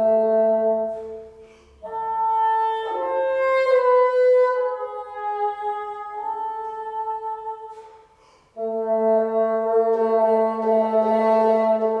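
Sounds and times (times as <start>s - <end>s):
bassoon playing sustained notes: 0.0s - 12.0s.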